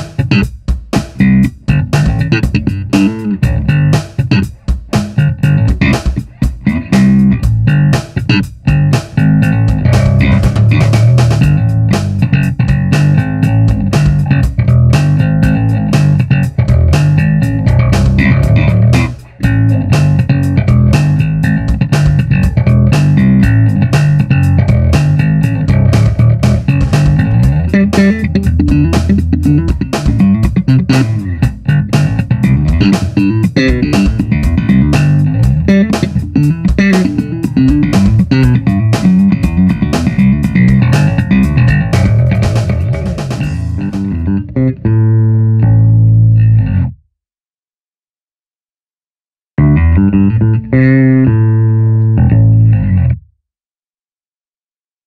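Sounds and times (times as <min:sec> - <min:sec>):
electric bass quick notes: 0:00.0 - 0:47.0, 0:49.6 - 0:53.2
held low bass note: 0:01.2 - 0:46.9, 0:49.6 - 0:53.2.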